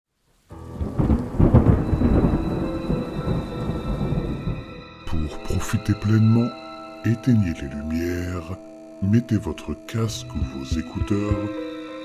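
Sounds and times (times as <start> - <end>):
heavy rain: 0.3 - 4.8
thunder rumbling: 0.5 - 4.8.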